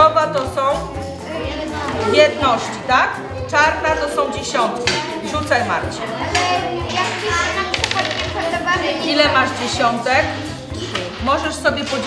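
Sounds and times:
background music: 0:00.0 - 0:12.0
children's voices: 0:00.8 - 0:11.2
dice clattering on a table: 0:07.7 - 0:08.4.

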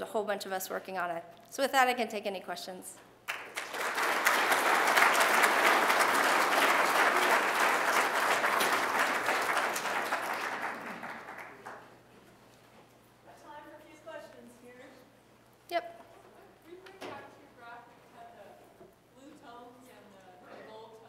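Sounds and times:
audience applauding: 0:03.2 - 0:12.0.

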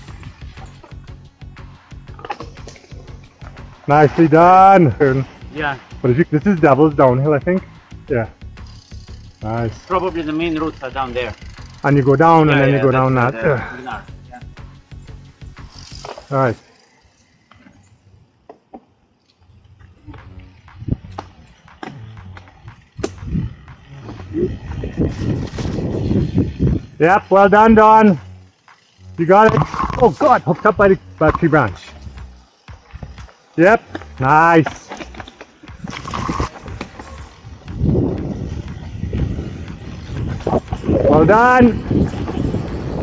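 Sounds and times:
bike knocks and rattles: 0:00.0 - 0:13.3, 0:17.3 - 0:43.0
bike tyre noise on dirt: 0:00.0 - 0:43.0.

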